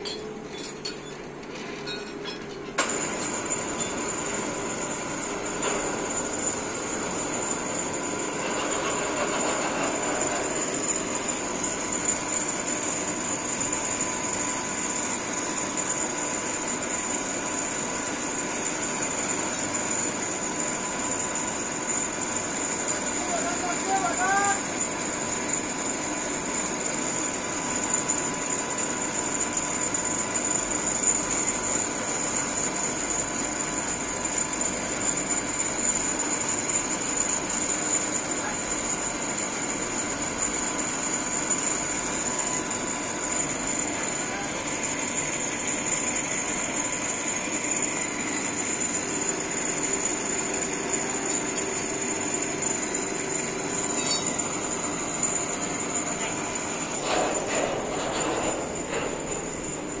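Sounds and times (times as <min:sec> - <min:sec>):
crane whining: 0:39.2 - 1:00.0.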